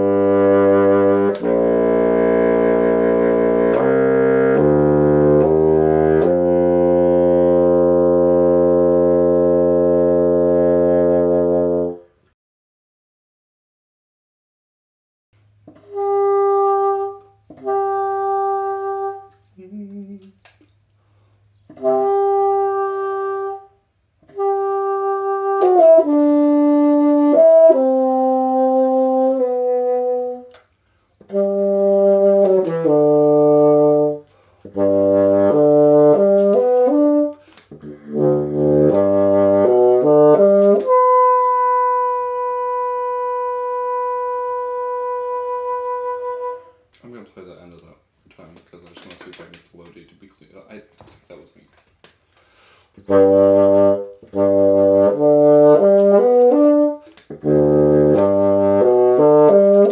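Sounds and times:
bassoon melody: 0.0 - 12.2, 15.7 - 20.2, 21.7 - 30.6, 31.2 - 46.9, 53.0 - 59.9.

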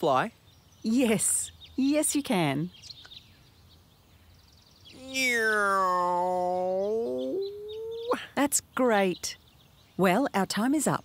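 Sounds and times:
drawn-out vocal sound: 5.0 - 8.2.

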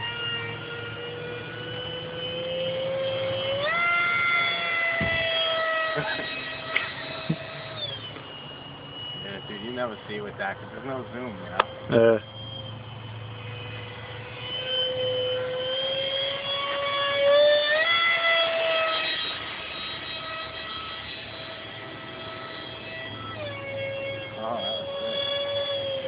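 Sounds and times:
electric ducted fan whine: 0.0 - 26.0.

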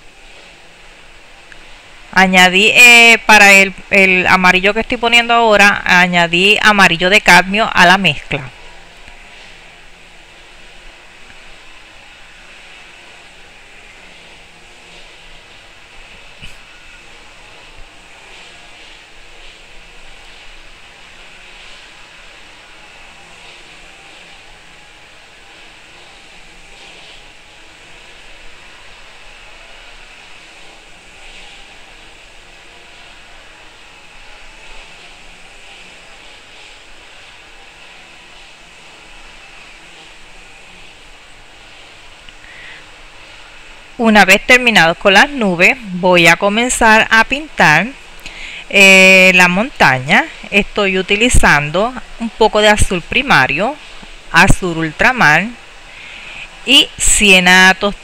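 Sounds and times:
background hiss: 0.0 - 58.0.

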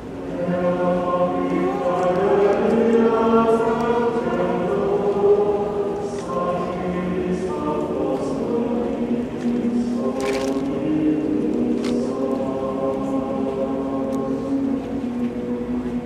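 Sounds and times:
choir singing held chords: 0.0 - 16.0.

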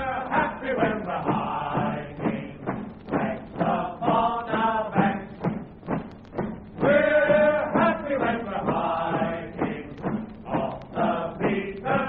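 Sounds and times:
voices singing: 0.0 - 12.0.

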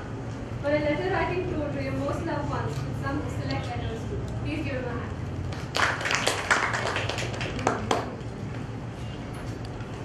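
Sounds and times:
audience clapping: 5.5 - 8.2.

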